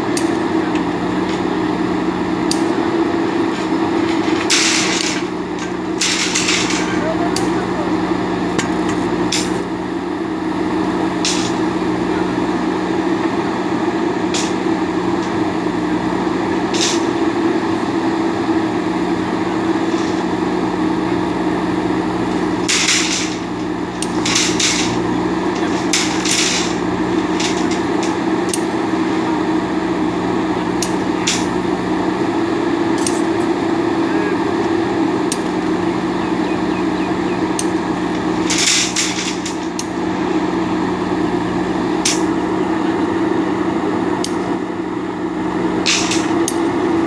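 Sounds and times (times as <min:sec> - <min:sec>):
diesel engine running under load: 0:00.0 - 0:47.0
metal clanks and knocks: 0:03.3 - 0:07.8, 0:08.4 - 0:09.7, 0:11.2 - 0:12.1, 0:14.1 - 0:15.6, 0:22.2 - 0:29.3, 0:30.7 - 0:31.6, 0:32.9 - 0:33.5, 0:37.6 - 0:40.0, 0:45.8 - 0:46.7.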